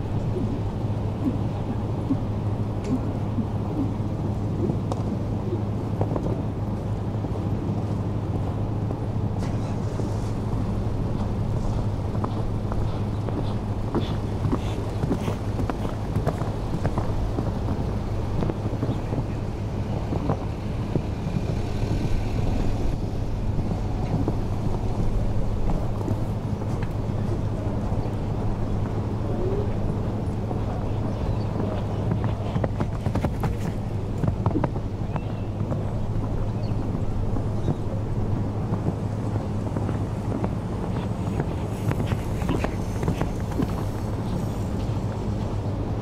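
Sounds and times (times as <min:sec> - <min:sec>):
constant low hum: 0:00.0 - 0:46.0
horse hooves cantering on sand: 0:00.0 - 0:46.0
low outdoor rumble: 0:00.0 - 0:46.0
wind buffeting microphone: 0:00.0 - 0:46.0.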